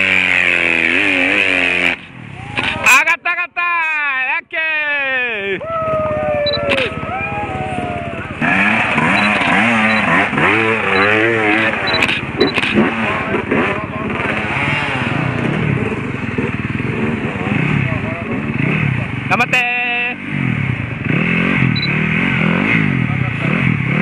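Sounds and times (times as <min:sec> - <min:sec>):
dirt bike engine revving: 0:00.0 - 0:02.9, 0:05.8 - 0:24.0
voices: 0:02.3 - 0:20.3.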